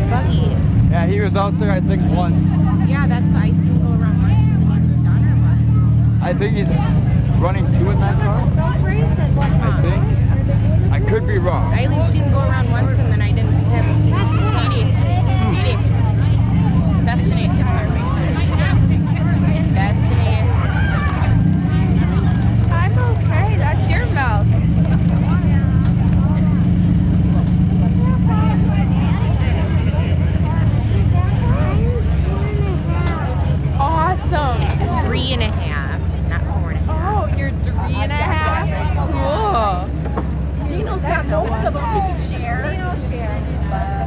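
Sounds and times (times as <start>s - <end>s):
car engines idling: 0.0s - 44.0s
indistinct voices talking: 0.0s - 44.0s
people chatting: 0.0s - 44.0s.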